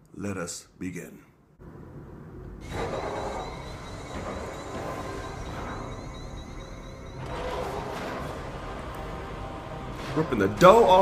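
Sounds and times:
rumbling sound effects: 1.6 - 11.0
dramatic film music: 2.6 - 11.0.

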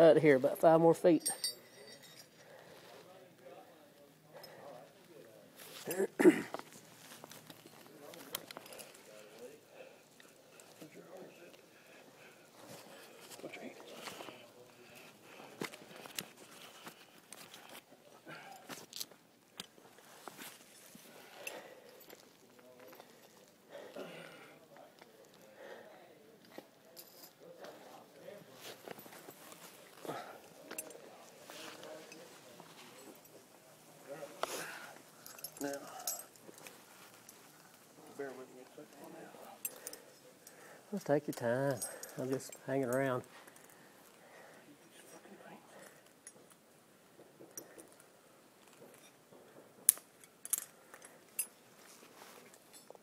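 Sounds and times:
metal carabiners clinking: 0.6 - 2.6, 28.8 - 31.1, 34.6 - 38.3, 39.4 - 43.8, 49.8 - 51.6
rope and rigging gear rustling: 4.7 - 25.5, 26.4 - 53.0.

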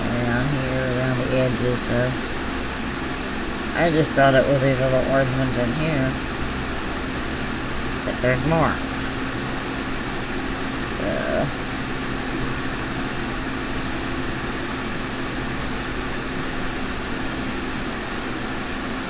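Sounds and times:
constant low hum: 0.0 - 19.0
fan whirring: 0.0 - 19.0.

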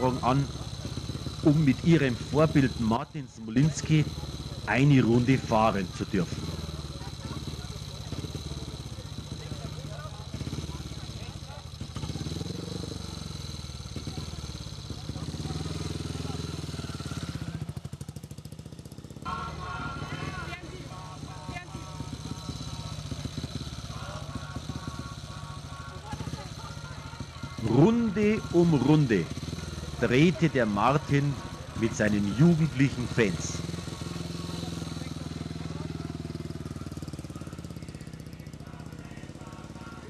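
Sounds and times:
motorcycle engine at low revs: 0.0 - 40.0.

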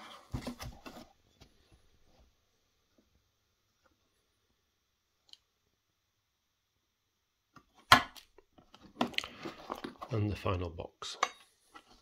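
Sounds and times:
plastic box clattering and rustling: 0.1 - 1.2, 8.6 - 10.3.

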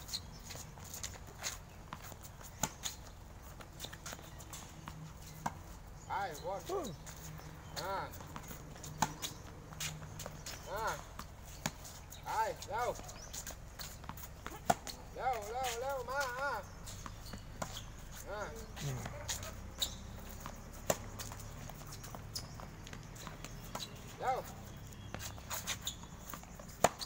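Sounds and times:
tennis balls bouncing on hard court: 0.1 - 27.0
tennis balls struck by rackets: 0.4 - 27.0
light taps on hard court: 8.2 - 10.6
tennis ball struck by racket: 8.4 - 10.6, 13.8 - 15.0.

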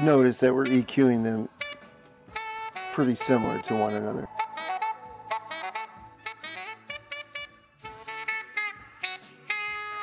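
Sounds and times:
live band playing: 4.3 - 6.7.

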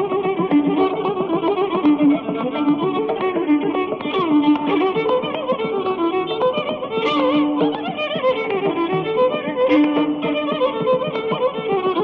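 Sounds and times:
rapid percussion strokes: 0.0 - 12.0.

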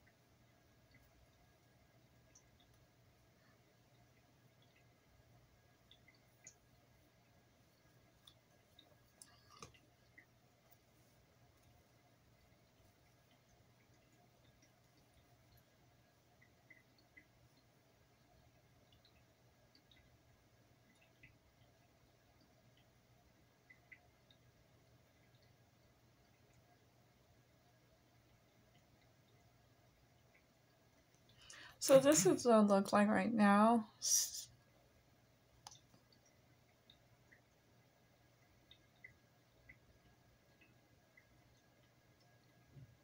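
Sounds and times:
faint steady hum: 0.0 - 43.0.

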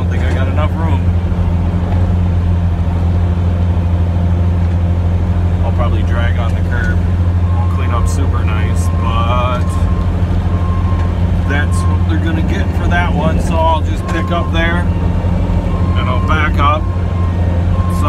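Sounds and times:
truck engine low drone: 0.0 - 18.0.

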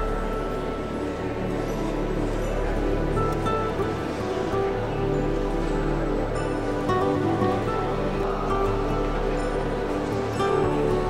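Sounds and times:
soft sustained background music: 0.0 - 11.0.

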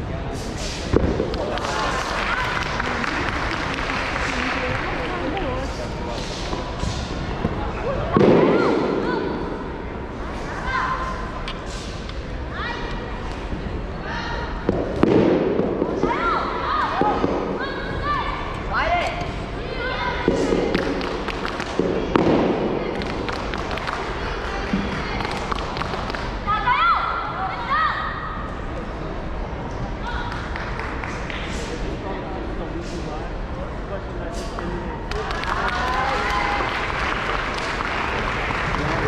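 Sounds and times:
background chatter: 0.0 - 39.0.

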